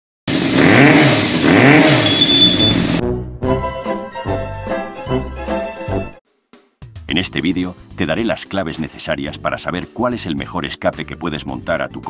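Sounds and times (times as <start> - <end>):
motorcycle engine revving: 0.3 - 3.0.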